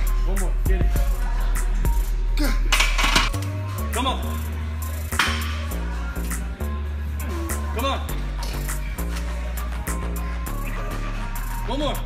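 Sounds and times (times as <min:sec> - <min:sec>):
deep bass line: 0:00.0 - 0:12.0
hip hop beat: 0:00.0 - 0:12.0
person rapping over a beat: 0:00.1 - 0:02.4.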